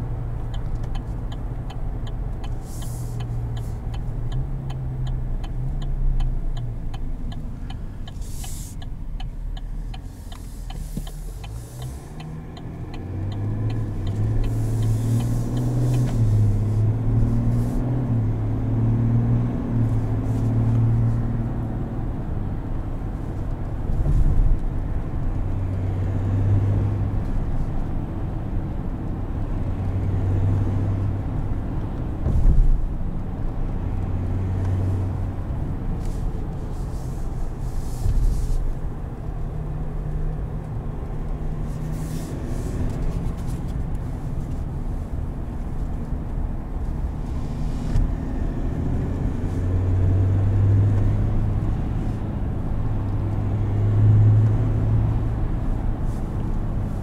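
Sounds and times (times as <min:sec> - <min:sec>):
diesel engine while driving: 0:00.0 - 0:57.0
rapid light ticking: 0:00.4 - 0:16.1.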